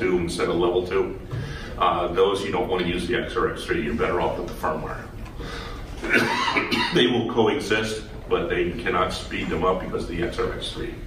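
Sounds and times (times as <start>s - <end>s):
man speaking: 0.0s - 1.2s, 1.8s - 5.2s, 6.6s - 11.0s
man coughing: 6.0s - 7.1s.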